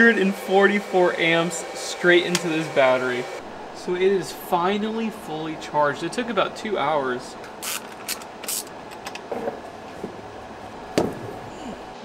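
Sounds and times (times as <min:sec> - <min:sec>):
handling wiring at battery terminal: 0:07.4 - 0:10.3.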